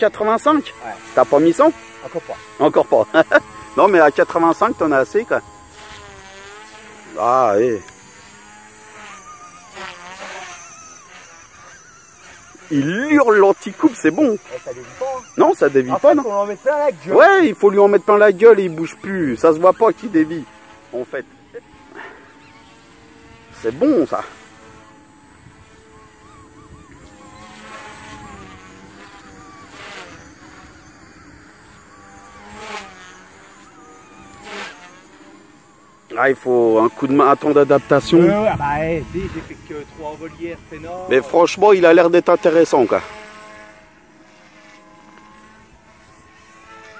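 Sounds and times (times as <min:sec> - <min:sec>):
rc helicopter rotor whine: 0:00.0 - 0:46.9
tail rotor howling: 0:00.0 - 0:46.9.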